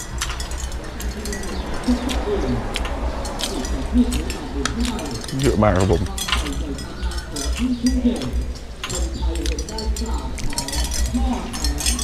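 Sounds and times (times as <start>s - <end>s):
chewing: 0.0s - 12.0s
cutlery clinking on a plate: 0.0s - 12.0s.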